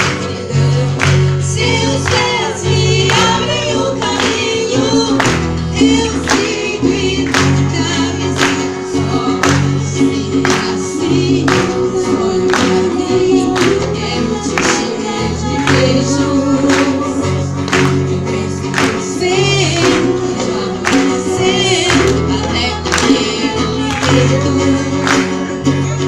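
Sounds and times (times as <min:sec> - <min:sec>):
live pop song with singer: 0:00.0 - 0:26.0.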